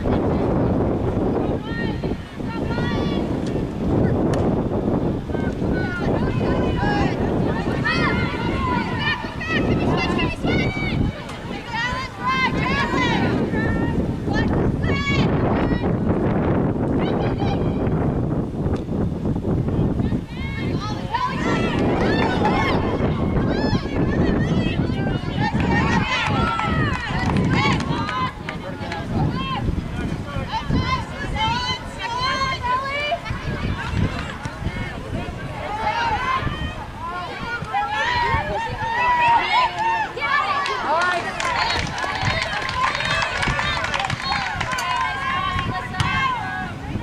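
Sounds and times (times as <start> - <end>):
people calling and shouting: 0.0 - 47.0.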